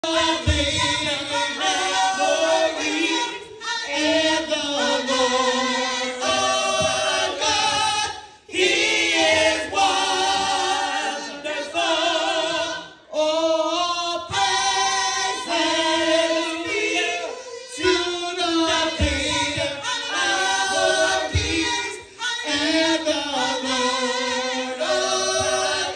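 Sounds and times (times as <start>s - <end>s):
group singing a gospel song: 0.0s - 25.9s.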